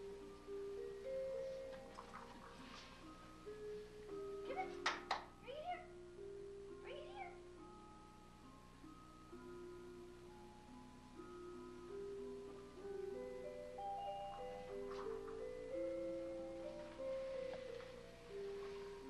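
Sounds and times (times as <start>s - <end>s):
electronic keyboard melody: 6.2s - 19.0s.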